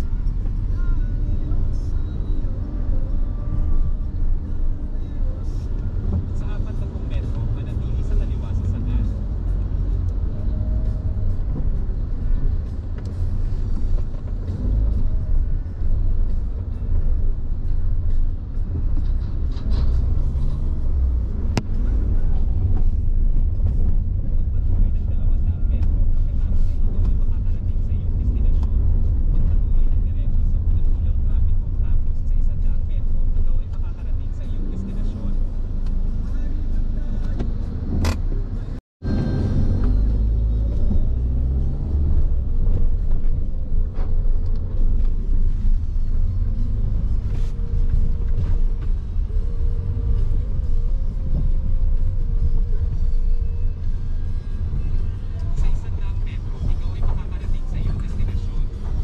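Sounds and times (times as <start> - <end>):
car driving rumble: 0.0 - 59.0.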